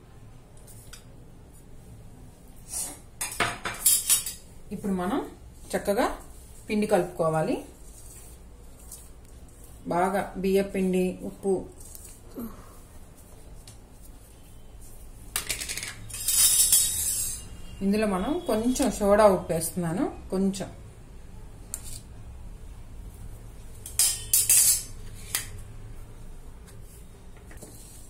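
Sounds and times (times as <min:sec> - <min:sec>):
woman speaking: 0:04.7 - 0:07.8, 0:09.8 - 0:11.8, 0:17.8 - 0:20.8.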